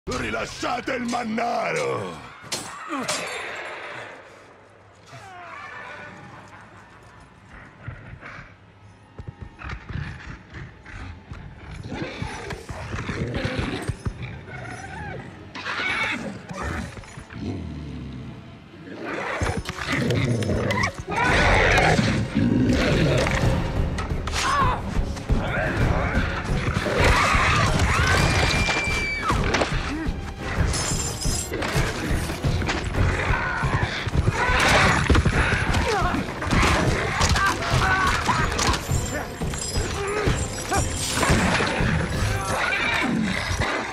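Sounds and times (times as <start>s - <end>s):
beast growling and snarling: 9.6s - 23.4s, 41.2s - 43.9s
monster snarling and shrieking: 25.7s - 29.2s, 39.9s - 43.9s
chain rattling and clinking: 30.6s - 32.4s, 38.0s - 42.5s.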